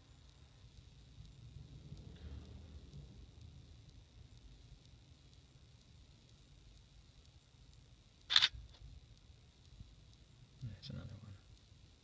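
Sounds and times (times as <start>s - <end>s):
camera shutter click: 8.3s - 8.6s.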